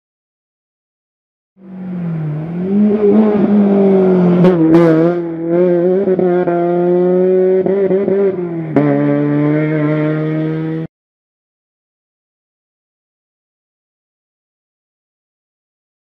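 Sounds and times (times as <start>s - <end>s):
rally car engine revving: 1.6s - 10.9s.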